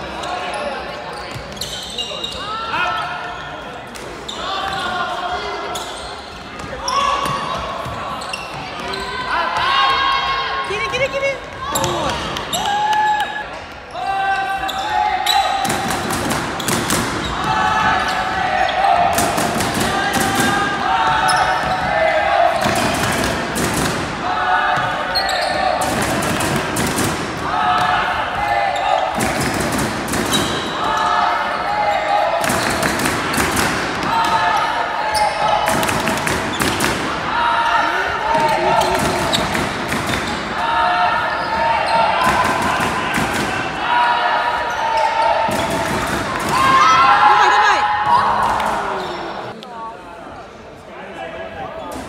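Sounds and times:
players shouting: 6.6s - 49.6s.

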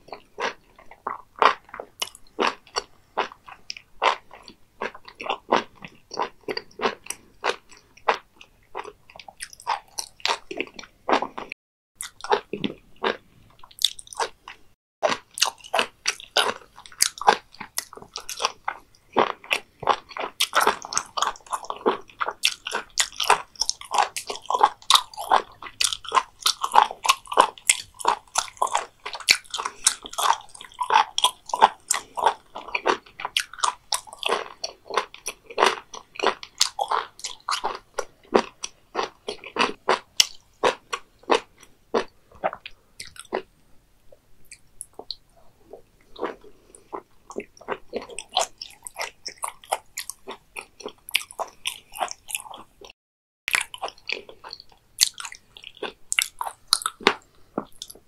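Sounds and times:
crunchy chewing: 0.0s - 43.6s, 44.4s - 52.9s, 53.5s - 58.0s.

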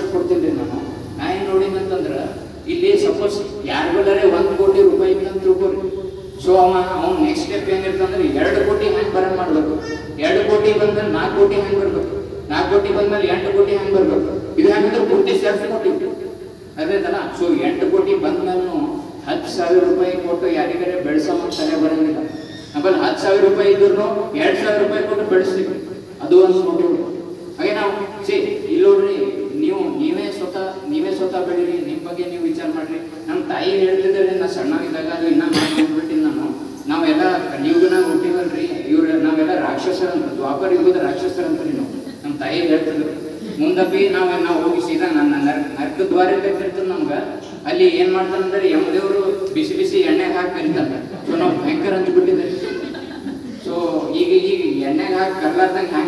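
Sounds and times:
man speaking into a microphone: 0.0s - 56.0s.

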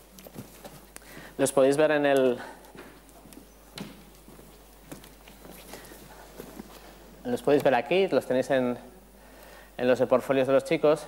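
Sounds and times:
faint footsteps on stage: 0.0s - 7.6s.

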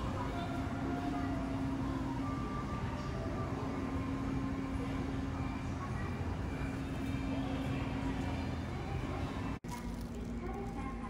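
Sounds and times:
underground station rumble: 0.0s - 11.0s.

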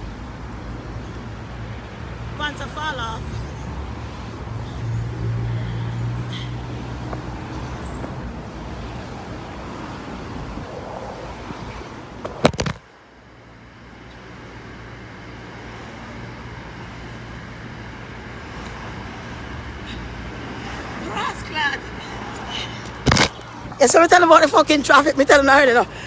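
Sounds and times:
city street traffic rumble: 0.0s - 26.0s.

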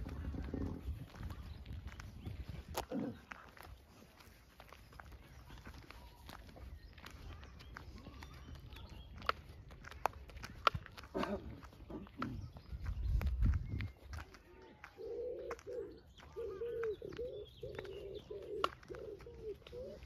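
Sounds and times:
pigeon cooing: 14.8s - 20.0s.

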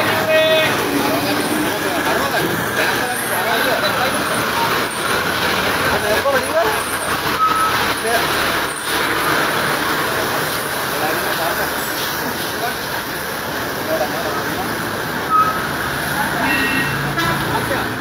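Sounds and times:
people talking: 0.0s - 18.0s
street traffic noise: 0.0s - 18.0s.

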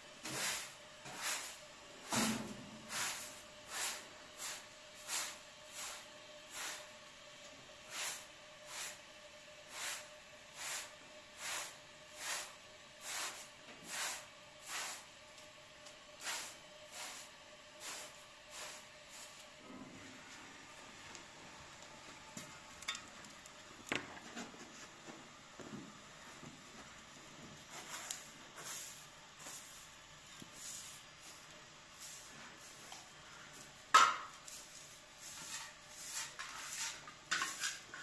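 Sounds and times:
broom sweeping swishes: 0.2s - 6.9s, 9.7s - 15.1s, 16.2s - 19.5s, 27.6s - 33.5s, 34.4s - 37.8s.

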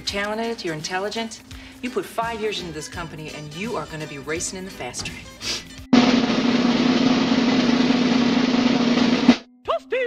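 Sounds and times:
snare drum roll: 6.0s - 9.5s.

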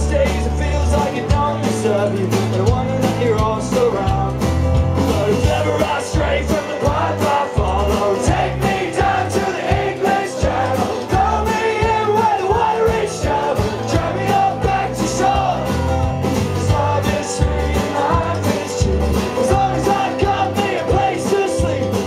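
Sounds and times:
bass: 0.0s - 22.0s
keyboard: 0.0s - 22.0s
man singing lead: 0.0s - 22.0s
steady drum beat: 0.0s - 22.0s
strummed acoustic guitar: 0.0s - 22.0s.

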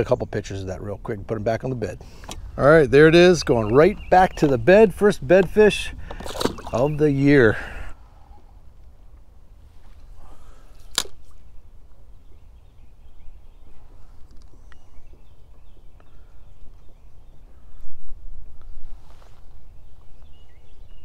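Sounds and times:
wind rumble on microphone: 0.0s - 10.2s, 11.5s - 21.0s
sharp click: 10.9s - 11.2s
faint bird calls: 12.3s - 18.2s.

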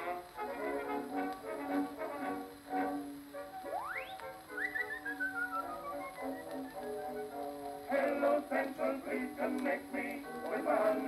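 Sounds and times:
gramophone band accompaniment: 0.0s - 8.1s
male vocal quartet singing: 7.9s - 11.0s.

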